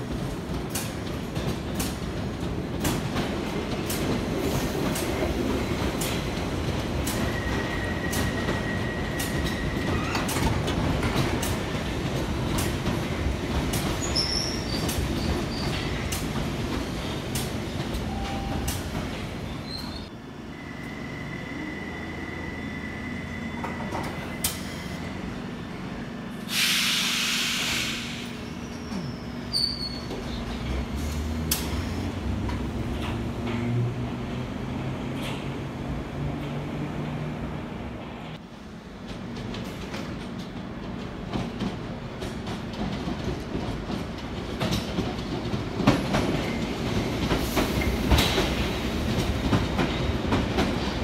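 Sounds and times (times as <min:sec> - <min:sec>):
train wheels rumbling on rails: 0:00.0 - 0:20.1, 0:22.5 - 0:51.0
high brake squeal: 0:19.6 - 0:25.1, 0:26.5 - 0:30.1
hissing air burst: 0:26.5 - 0:28.4.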